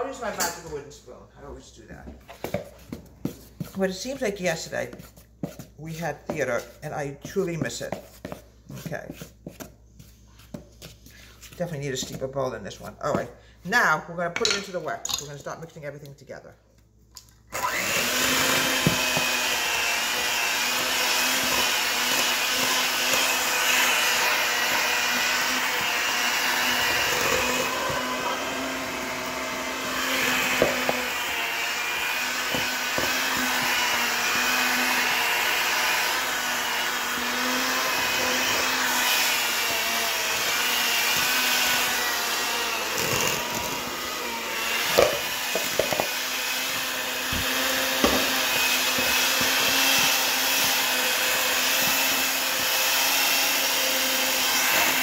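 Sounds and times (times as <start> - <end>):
electric hand mixer running: 17.5 - 55.0.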